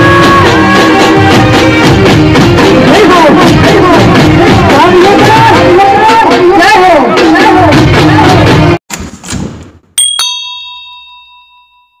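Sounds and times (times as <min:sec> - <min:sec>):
bell ding ringing: 0:10.0 - 0:12.0.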